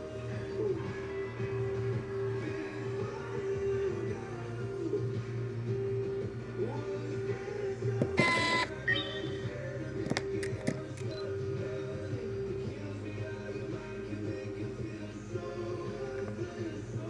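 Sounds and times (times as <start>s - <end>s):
radio music: 0.0s - 17.0s
short bright tone: 8.2s - 9.6s
sharp clicks: 10.0s - 11.2s.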